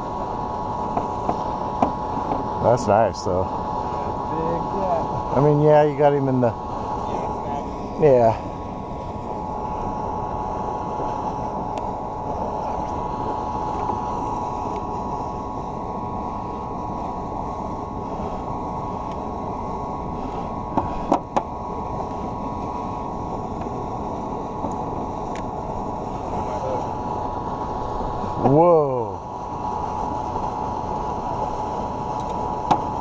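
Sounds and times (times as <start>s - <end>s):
electric motor humming: 0.0s - 33.0s.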